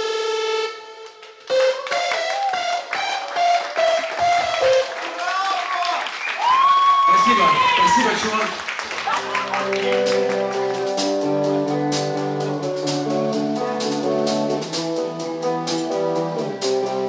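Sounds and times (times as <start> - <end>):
audience clapping and cheering: 1.0 - 11.3
person whooping: 1.5 - 10.5
people shouting: 5.3 - 8.4
band chord: 9.4 - 17.0.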